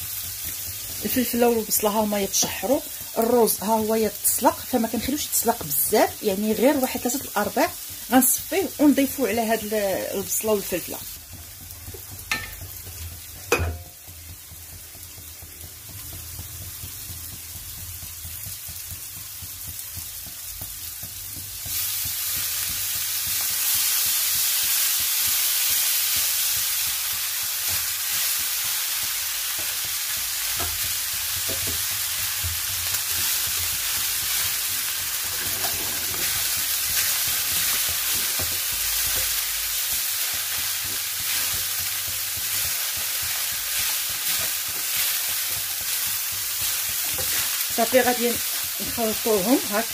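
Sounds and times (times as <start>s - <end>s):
stirring in a pan: 0.0s - 49.9s
vegetables frying in a pan: 0.0s - 49.9s.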